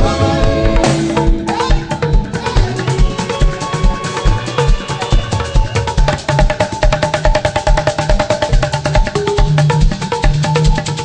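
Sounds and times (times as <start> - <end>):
bass drum beat: 0.0 - 11.0
gospel band playing: 0.0 - 11.0.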